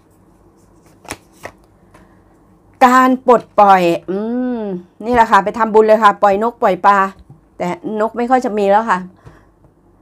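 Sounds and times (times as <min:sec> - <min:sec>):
card snaps: 0:00.9 - 0:01.7.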